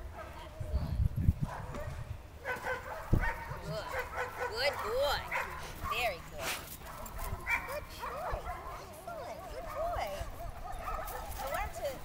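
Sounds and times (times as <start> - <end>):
dog yipping: 1.5 - 6.1, 6.9 - 8.9, 9.6 - 11.6.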